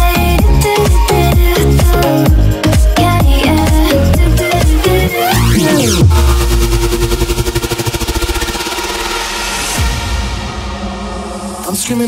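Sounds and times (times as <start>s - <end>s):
electronic dance music build-up: 0.0s - 12.0s.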